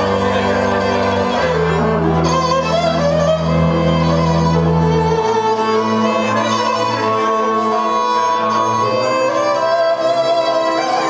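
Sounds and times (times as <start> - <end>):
steady low tone: 0.0 - 11.0
violin bowed long notes: 0.0 - 11.0.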